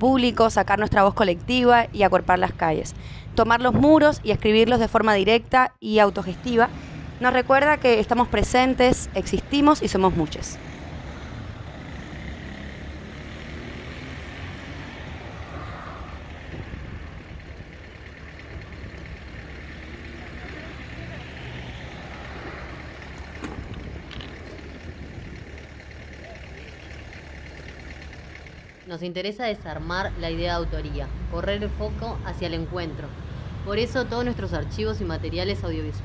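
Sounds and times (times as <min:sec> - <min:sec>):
low background rumble: 0:14.9 - 0:36.0.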